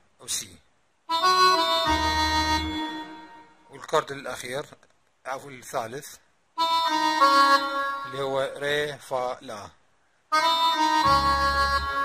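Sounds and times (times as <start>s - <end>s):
sustained reedy keyboard chord: 1.1s - 3.5s, 10.4s - 12.0s.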